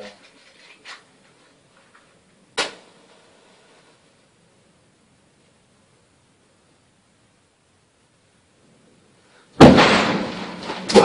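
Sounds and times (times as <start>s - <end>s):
sharp bang: 2.6s - 2.9s, 9.6s - 11.0s.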